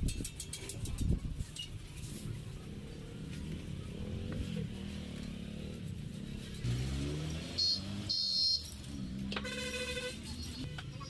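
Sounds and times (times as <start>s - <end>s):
vehicle horn: 7.6s - 10.7s.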